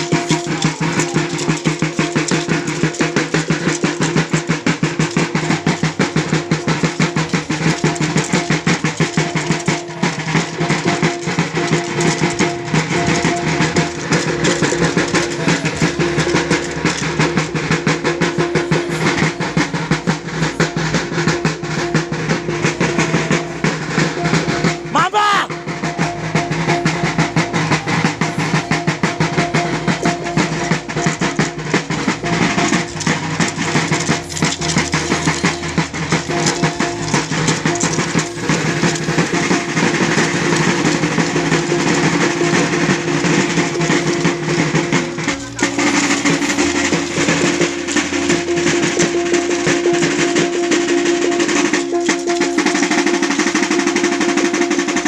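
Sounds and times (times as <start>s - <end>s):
steady ringing tone: 0.0s - 24.9s, 25.5s - 55.0s
drums beaten in a fast roll: 0.0s - 55.0s.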